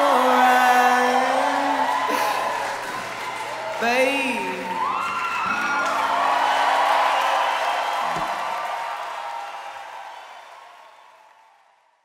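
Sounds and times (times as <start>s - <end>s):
audience applauding and cheering: 0.0s - 12.0s
low thump: 8.1s - 8.4s.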